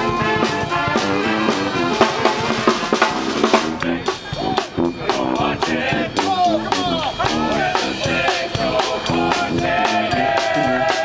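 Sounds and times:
saxophones and horns: 0.0s - 11.0s
snare and bass drum beats: 0.0s - 11.0s
sousaphone bass line: 0.0s - 11.0s.

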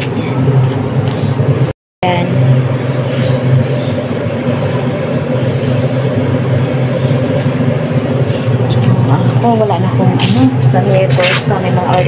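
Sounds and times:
low mechanical drone: 0.0s - 12.0s.

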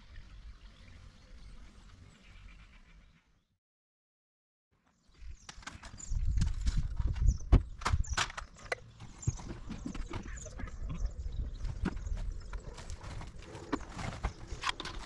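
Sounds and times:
wind rumble on microphone: 5.9s - 8.4s, 9.2s - 15.0s.

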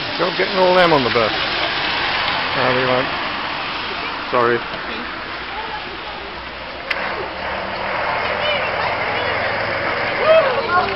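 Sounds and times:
bus driving on wet road: 0.0s - 10.9s
tyres hissing on wet road: 0.0s - 10.9s.

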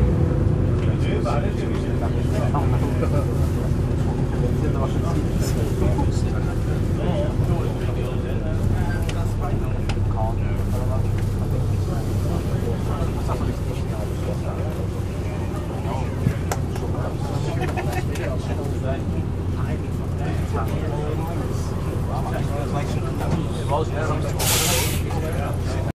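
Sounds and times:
bus diesel engine drone: 0.0s - 25.9s.

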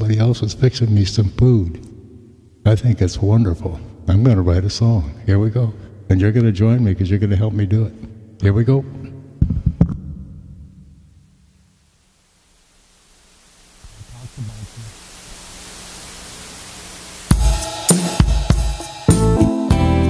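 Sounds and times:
drum beat with cymbals: 17.3s - 20.0s
keyboard chords: 17.3s - 20.0s.

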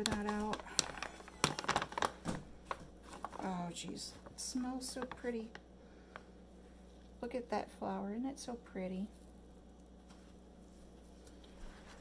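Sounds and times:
paper bag crinkling and tearing: 0.0s - 5.6s.

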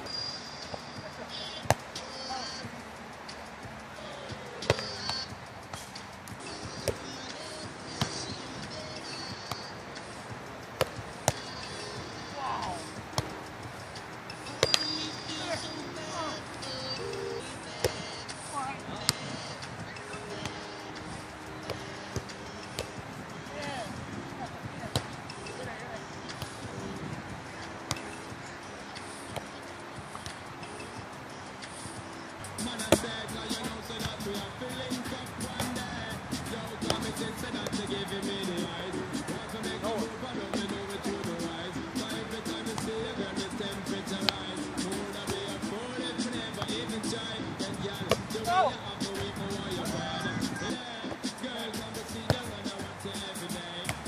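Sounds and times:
background music: 0.0s - 54.0s
faint voices: 0.0s - 54.0s
hands slapping volleyball: 14.6s - 14.9s.

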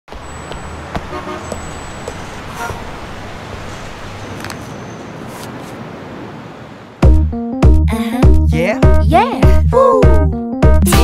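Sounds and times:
sharp footsteps: 0.1s - 2.3s
passing traffic: 0.1s - 8.2s.

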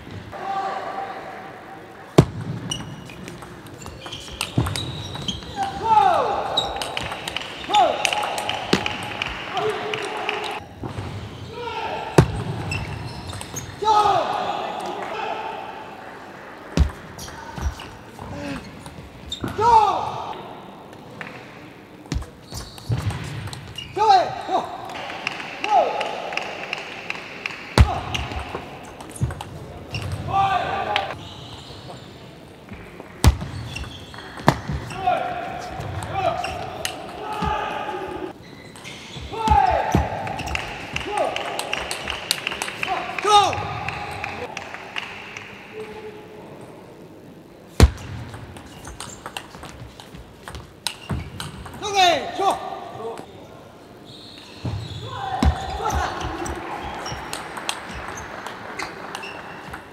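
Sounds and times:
shoes squeaking on floor: 2.6s - 5.8s, 12.2s - 13.8s, 17.2s - 19.6s, 22.2s - 24.5s, 31.1s - 32.2s, 33.3s - 35.0s, 35.6s - 39.8s, 48.6s - 51.8s, 54.0s - 59.9s.

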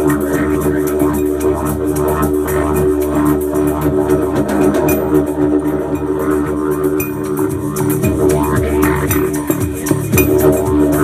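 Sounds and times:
bass guitar: 0.0s - 11.0s
didgeridoo drone: 0.0s - 11.0s
drums: 0.0s - 11.0s.

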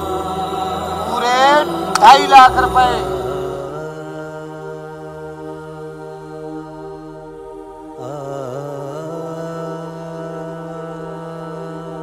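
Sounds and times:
drone of long held notes: 0.0s - 12.0s.

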